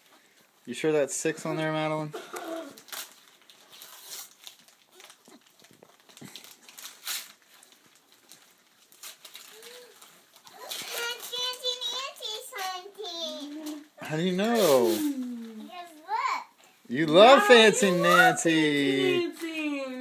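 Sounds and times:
paper rustling and tearing: 2.6s - 15.5s, 17.0s - 19.8s
child's voice: 10.5s - 13.9s, 15.4s - 16.6s, 17.4s - 19.1s.

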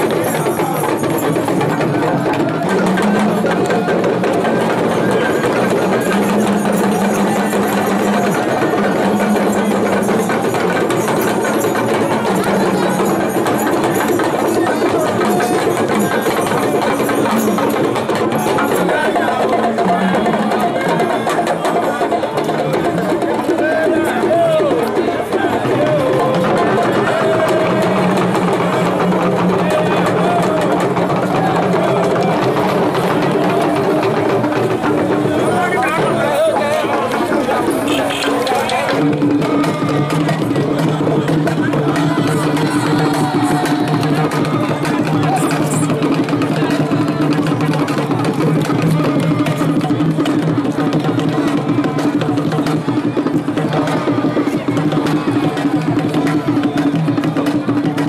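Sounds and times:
crowd voices: 0.0s - 58.0s
talking drums playing rhythm: 0.0s - 58.0s.

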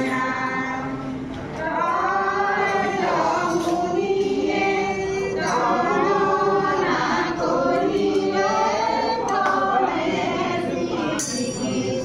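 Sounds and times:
group singing devotional chant: 0.0s - 12.0s.

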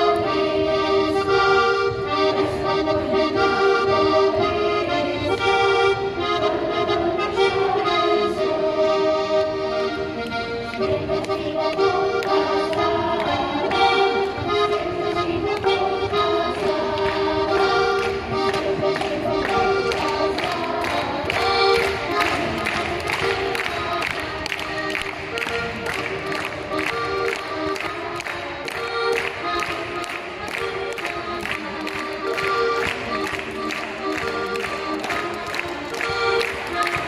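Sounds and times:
accordion folk dance tune: 0.0s - 37.0s.

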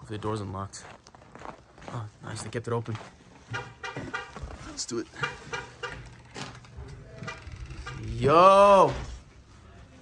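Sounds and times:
squeaky footsteps: 0.8s - 8.2s.

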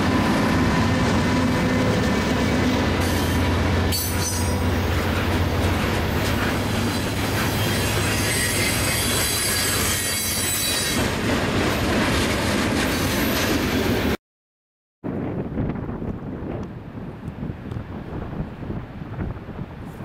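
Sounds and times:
freight train wheels on rail: 0.0s - 14.2s
high wheel squeal: 6.5s - 11.0s.

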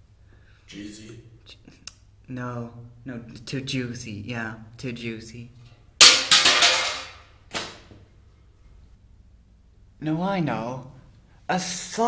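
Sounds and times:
hard object knocked down: 6.0s - 7.9s.

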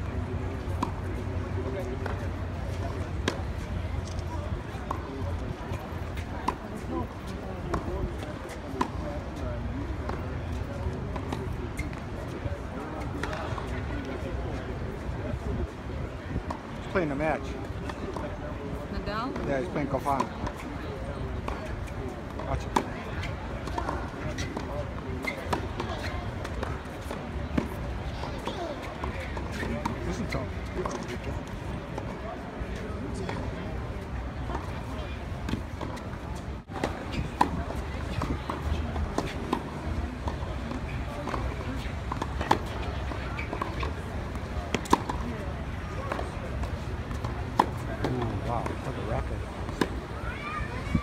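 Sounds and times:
tennis balls struck by racquets: 0.0s - 9.1s, 12.8s - 14.6s, 19.3s - 50.1s
many people chatting: 0.0s - 51.0s.

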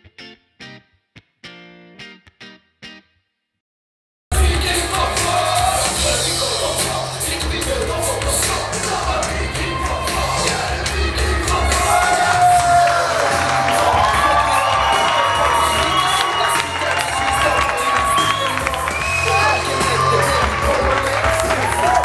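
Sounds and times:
loud music with heavy bass: 4.3s - 22.0s
crowd cheering and shouting: 4.4s - 22.0s.

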